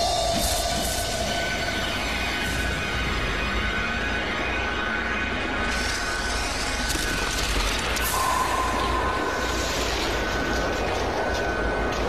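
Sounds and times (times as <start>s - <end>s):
dark ominous music: 0.0s - 12.0s.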